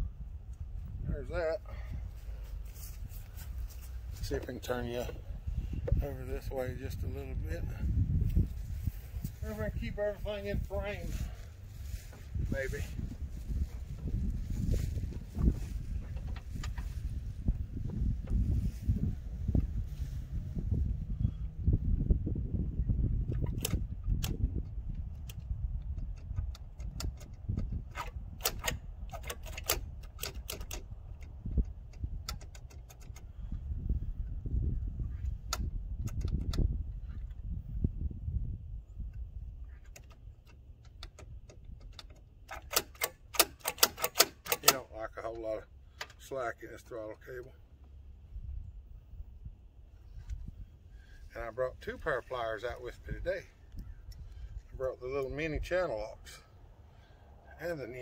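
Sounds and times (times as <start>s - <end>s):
low rumble: 0.0s - 26.6s
clicks and taps on handle: 15.3s - 17.0s, 23.3s - 33.3s, 35.4s - 37.2s, 39.7s - 45.4s.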